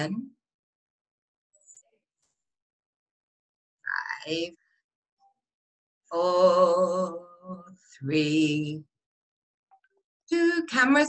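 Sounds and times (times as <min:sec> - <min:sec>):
woman speaking: 0:00.0 - 0:00.4, 0:03.9 - 0:04.6, 0:06.1 - 0:08.9, 0:10.3 - 0:11.0.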